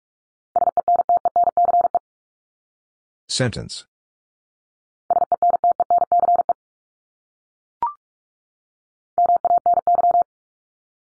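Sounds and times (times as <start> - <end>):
morse code beeps: 0.6 - 2.0, 5.1 - 6.6, 9.2 - 10.3.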